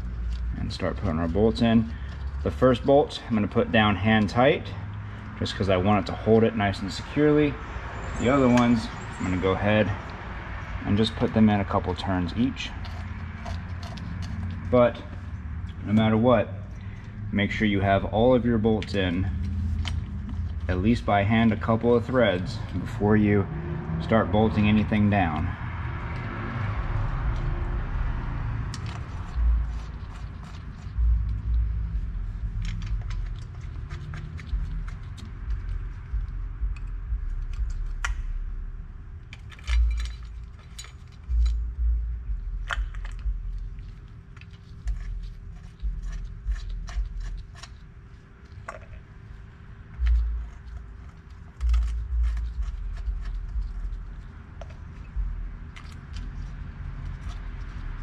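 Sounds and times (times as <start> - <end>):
light metallic clicks and scrapes: 0.0 - 10.2, 10.8 - 23.4, 28.6 - 38.4, 39.2 - 58.0
dull low thumps: 34.5 - 39.2, 41.3 - 43.8, 55.1 - 55.8.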